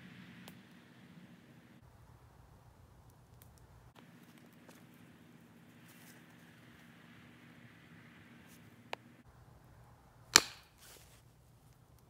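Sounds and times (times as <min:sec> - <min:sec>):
steady low hum: 0:00.0 - 0:10.4.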